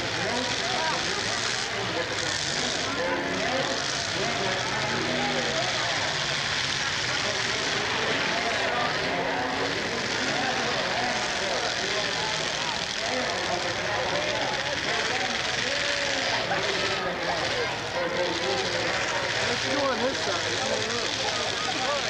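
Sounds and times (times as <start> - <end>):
car engines running: 0.0 - 22.0
crowd talking: 0.0 - 22.0.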